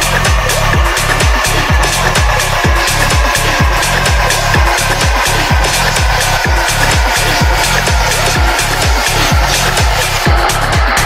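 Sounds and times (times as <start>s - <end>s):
hi-hat ticking: 0.0s - 11.0s
house dance music: 0.0s - 11.0s
steady kick drum: 0.0s - 11.0s.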